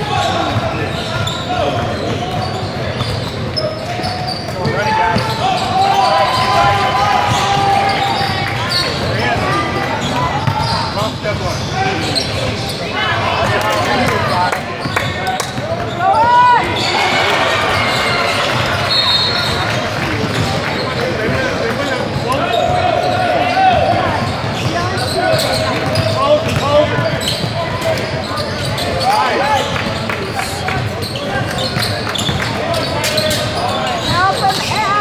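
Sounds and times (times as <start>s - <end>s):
players and spectators shouting: 0.0s - 35.0s.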